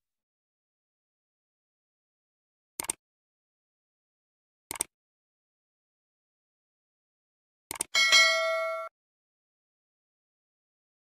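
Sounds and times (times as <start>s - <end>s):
bright notification bell ding: 8.0s - 8.9s.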